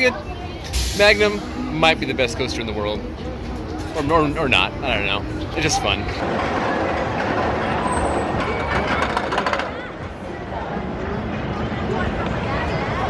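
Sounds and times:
people's voices: 0.0s - 13.0s
roller coaster clattering on track: 6.1s - 10.4s.

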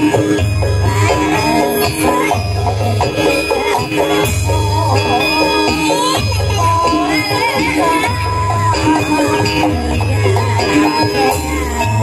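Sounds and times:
drums and percussion: 0.0s - 12.0s.

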